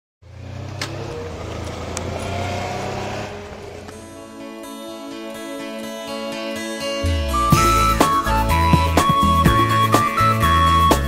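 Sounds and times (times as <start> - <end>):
motorcycle engines idling: 0.2 - 4.4
outdoor noise: 0.2 - 5.4.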